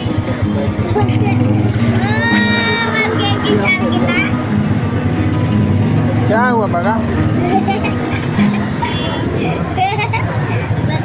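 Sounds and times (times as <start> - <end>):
crowd chatter: 0.0 - 11.0
street traffic: 0.0 - 11.0
children's voices: 1.1 - 4.5, 7.4 - 11.0.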